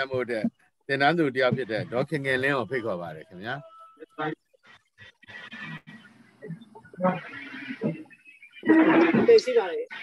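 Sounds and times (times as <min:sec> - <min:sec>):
muffled voice over video call: 0:00.0 - 0:04.4.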